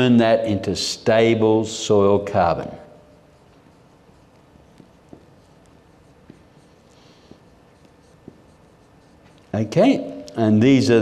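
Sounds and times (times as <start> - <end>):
marker scratching on whiteboard: 2.4 - 9.9.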